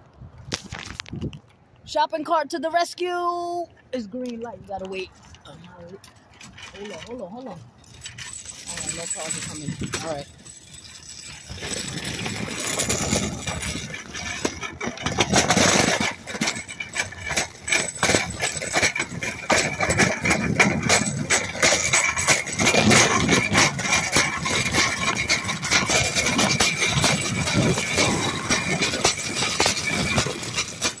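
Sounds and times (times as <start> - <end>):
shopping cart rattling on pavement: 5.6 - 31.0.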